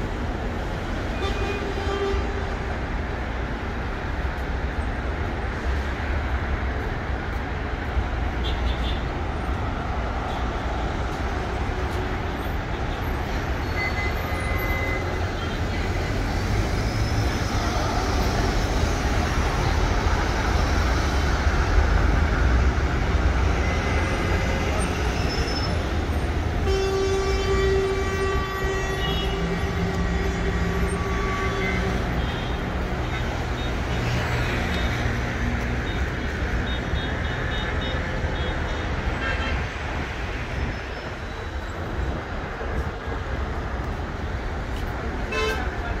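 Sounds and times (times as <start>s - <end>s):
road traffic rumble: 0.0s - 46.0s.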